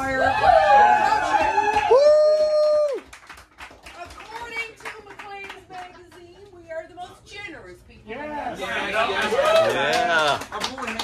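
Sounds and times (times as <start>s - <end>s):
person whooping: 0.2s - 3.1s.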